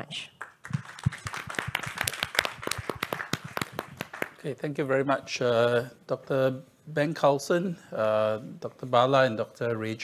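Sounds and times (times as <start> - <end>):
audience applauding: 0.4 - 4.4.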